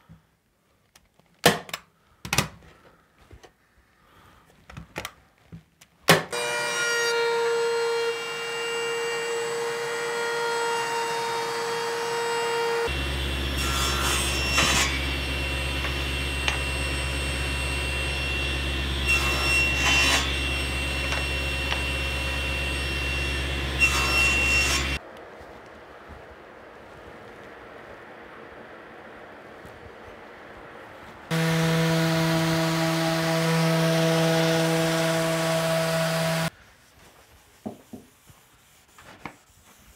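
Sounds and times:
table saw cutting wood: 0:06.3 - 0:25.0, 0:31.3 - 0:36.5
power tool running: 0:11.2 - 0:25.0, 0:31.3 - 0:36.5.

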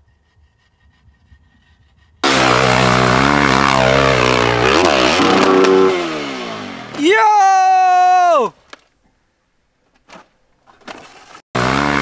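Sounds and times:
dirt bike engine revving: 0:02.2 - 0:07.5, 0:11.6 - 0:12.0.

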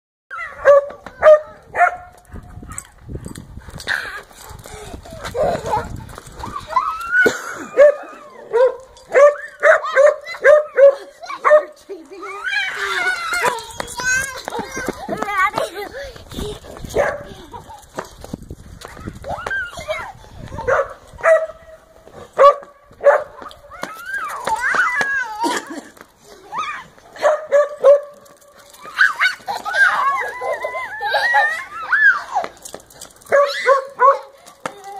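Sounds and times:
children squealing and talking: 0:00.3 - 0:03.1, 0:03.8 - 0:18.1, 0:18.7 - 0:21.9, 0:23.3 - 0:27.2, 0:28.6 - 0:34.9
dog barking: 0:00.6 - 0:02.1, 0:07.8 - 0:11.8, 0:17.0 - 0:17.3, 0:20.6 - 0:21.6, 0:22.4 - 0:23.4, 0:27.2 - 0:28.2, 0:33.3 - 0:34.3.

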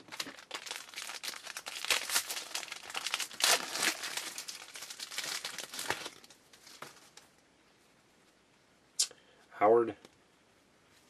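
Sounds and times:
foil wrapper tearing and crinkling: 0:00.0 - 0:06.4.

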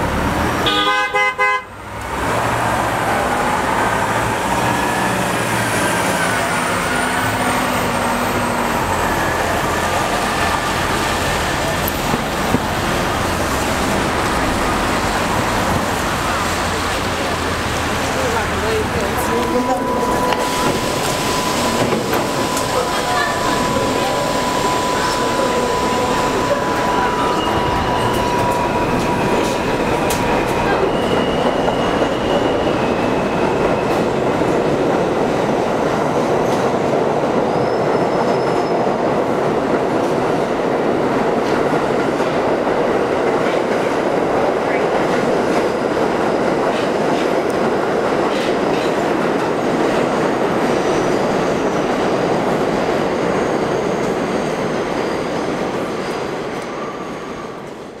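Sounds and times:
train wheels on rails: 0:01.8 - 0:58.0
brief high tones: 0:18.6 - 0:29.6.

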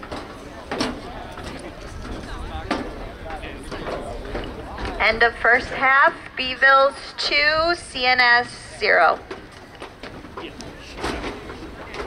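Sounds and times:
distant voices: 0:00.0 - 0:12.0
wind rumble on microphone: 0:01.0 - 0:06.4.

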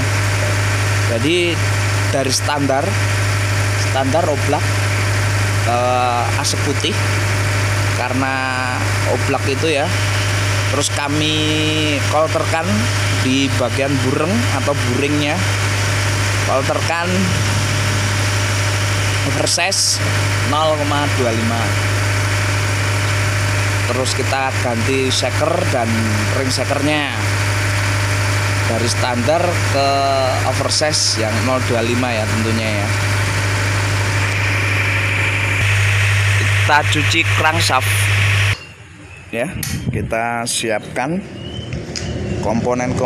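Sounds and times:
faint high whine: 0:00.0 - 0:41.4
low machine hum: 0:00.0 - 0:43.0
person speaking: 0:08.0 - 0:22.7, 0:23.6 - 0:27.4, 0:35.6 - 0:38.2.

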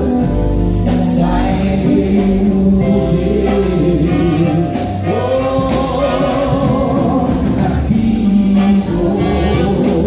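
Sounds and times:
group singing with live band: 0:00.0 - 0:10.0.

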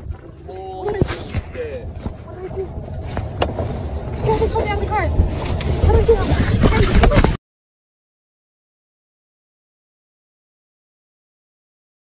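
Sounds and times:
car rumble from inside cabin: 0:00.0 - 0:07.4.

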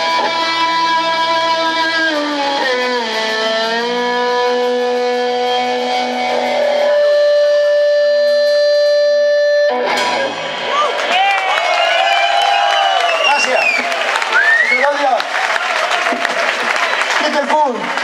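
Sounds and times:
distorted electric guitar lead: 0:00.0 - 0:11.3
bass and drums: 0:00.0 - 0:12.1.

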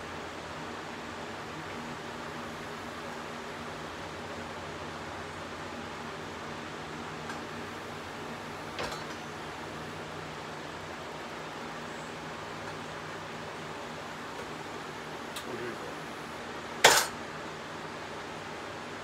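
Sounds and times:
low hum and hiss: 0:00.0 - 0:19.0.

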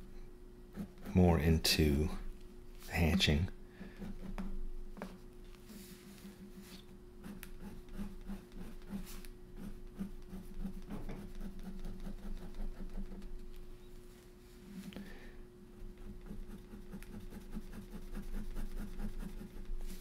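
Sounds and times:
pen scratching on paper: 0:07.2 - 0:13.3, 0:16.0 - 0:19.9.

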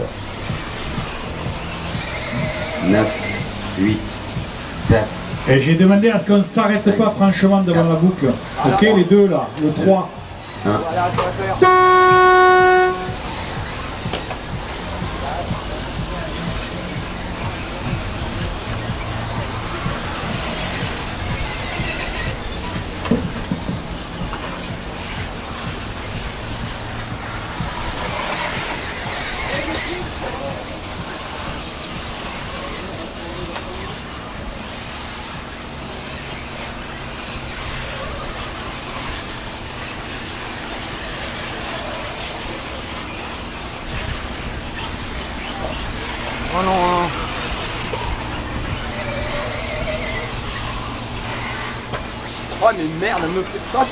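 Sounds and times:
music: 0:00.0 - 0:53.9
radio-controlled cars running: 0:00.0 - 0:53.9
steady hum: 0:00.0 - 0:53.9.

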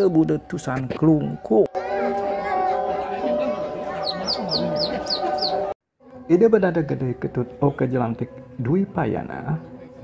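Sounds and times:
murmur of voices: 0:01.7 - 0:05.7
small bird chirping: 0:04.0 - 0:05.7.

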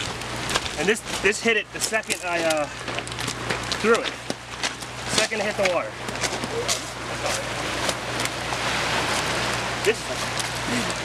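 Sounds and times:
surf on pebble shore: 0:00.0 - 0:11.0.

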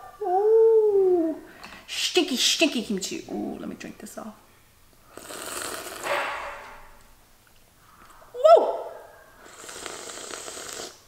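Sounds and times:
person sipping and slurping: 0:05.1 - 0:06.1, 0:09.4 - 0:11.0.

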